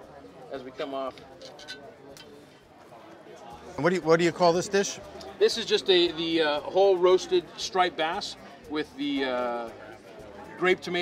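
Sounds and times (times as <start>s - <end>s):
faint voices talking: 0.0s - 11.0s.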